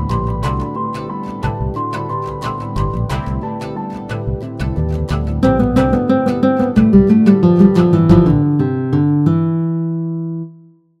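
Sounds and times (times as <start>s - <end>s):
plucked guitar chord ringing: 0.0s - 10.9s.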